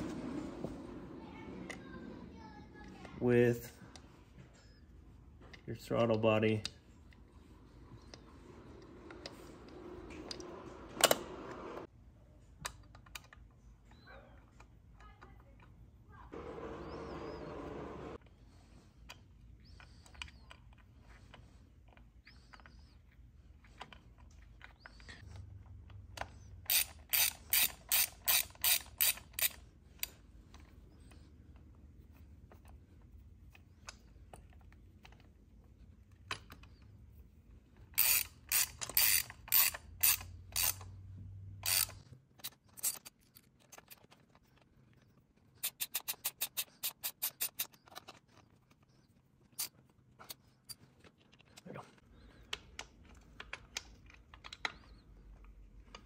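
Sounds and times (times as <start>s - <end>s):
socket ratchet clicking: 26.6s - 29.6s, 38.0s - 41.0s, 41.6s - 42.0s.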